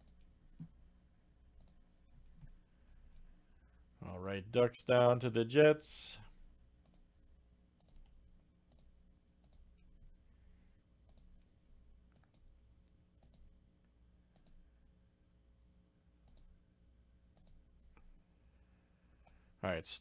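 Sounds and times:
computer mouse clicks: 0.0 - 0.7, 1.6 - 1.8, 6.8 - 7.1, 7.8 - 9.9, 11.0 - 11.4, 12.1 - 13.5, 14.3 - 14.6, 16.2 - 16.5, 17.3 - 18.1, 19.2 - 19.4
low steady hum: 0.0 - 20.0.

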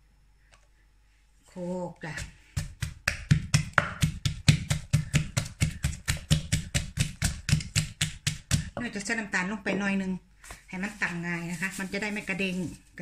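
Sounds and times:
pestle pounding in a mortar: 2.2 - 9.0.

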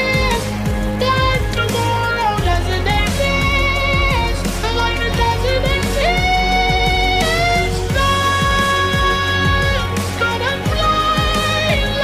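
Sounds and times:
backing track with bass and beat: 0.0 - 12.0
talk box lead melody: 0.0 - 12.0.

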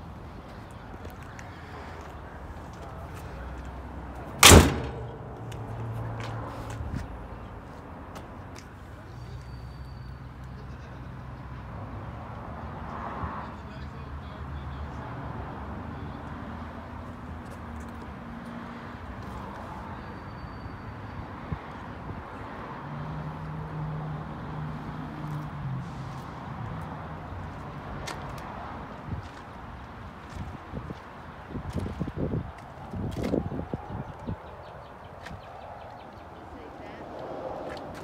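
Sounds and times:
low hum of distant vehicles: 0.0 - 38.0
footsteps on pavement: 5.2 - 8.8, 27.4 - 33.5.

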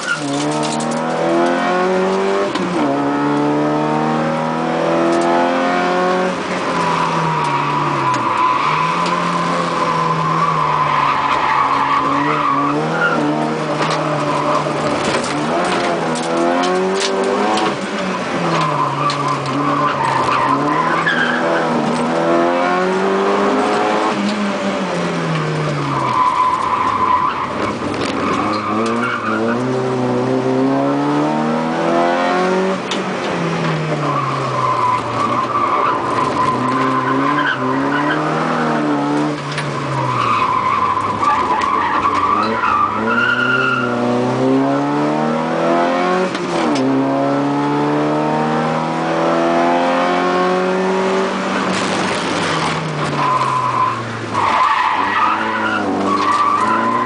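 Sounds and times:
rally car engine revving: 0.0 - 57.0
tyres squealing: 51.5 - 57.0.

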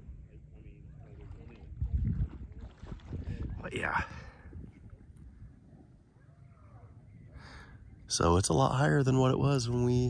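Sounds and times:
faint distant voice: 0.0 - 4.2
wind rumble on microphone: 0.0 - 7.4.

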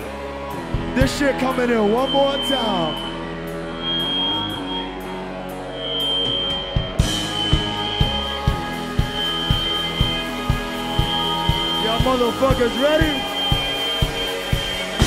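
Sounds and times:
steady high tone: 1.3 - 15.0
loud sustained drone: 1.6 - 15.0
drum beat: 6.7 - 15.0.

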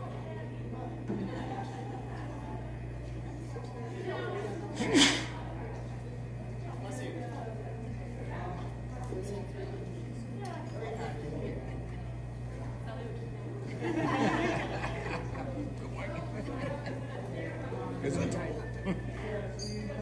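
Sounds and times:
electrical hum: 0.0 - 20.0
faint talk in a hall: 0.0 - 20.0
loud sneeze: 4.8 - 5.4.

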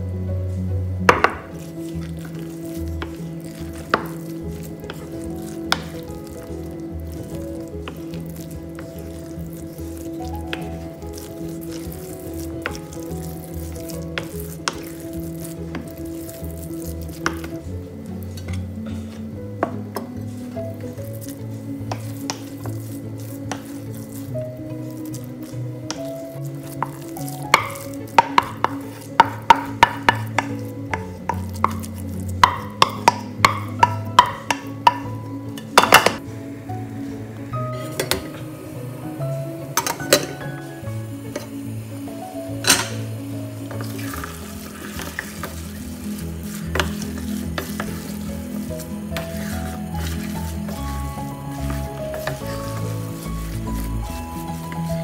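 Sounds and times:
wooden spoon stirring sticky rice: 0.0 - 55.0.

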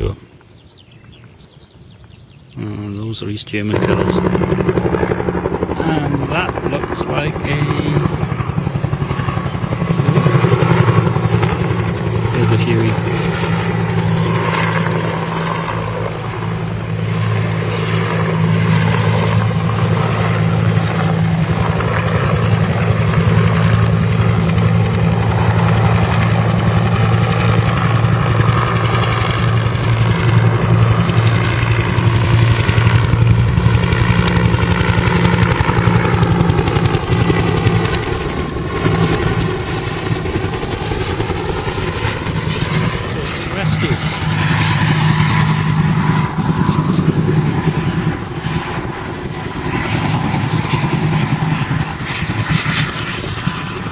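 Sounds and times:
helicopter rotor beating: 2.5 - 53.9.

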